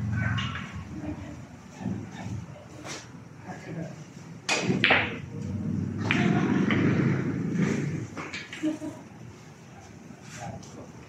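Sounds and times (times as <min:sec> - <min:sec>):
pool balls knocking: 0:04.5 - 0:08.6
ball rolling rumble: 0:04.6 - 0:08.6.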